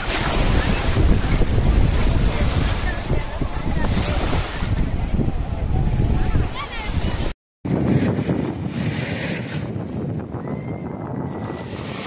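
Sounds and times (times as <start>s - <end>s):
sea surf washing onto beach: 0.0s - 10.2s
wind rumbling on microphone: 0.0s - 12.0s.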